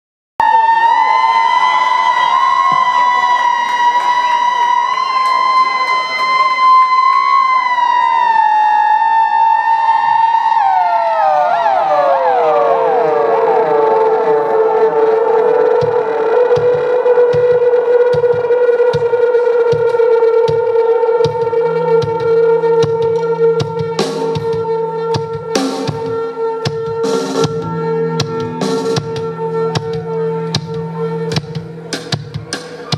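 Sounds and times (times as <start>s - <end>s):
siren-like electronic tone: 0.4s - 32.2s.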